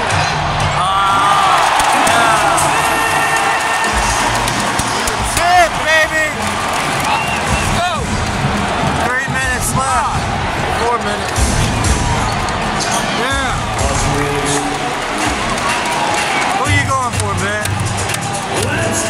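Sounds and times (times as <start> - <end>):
arena crowd noise: 0.0 - 19.0.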